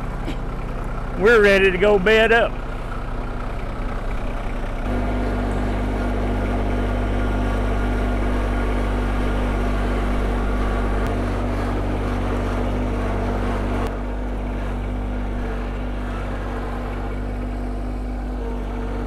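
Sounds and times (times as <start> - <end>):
garden tractor engine running: 0.0 - 19.0.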